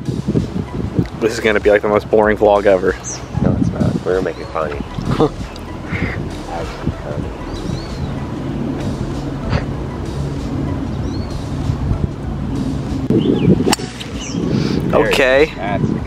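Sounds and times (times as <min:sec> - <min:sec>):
golf club hitting ball: 0:13.6 - 0:14.3.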